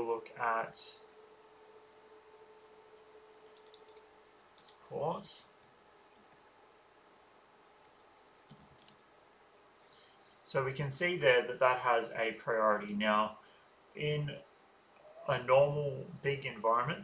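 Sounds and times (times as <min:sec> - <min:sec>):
computer keyboard typing: 0:03.4 - 0:04.7, 0:05.5 - 0:06.7, 0:07.8 - 0:09.1.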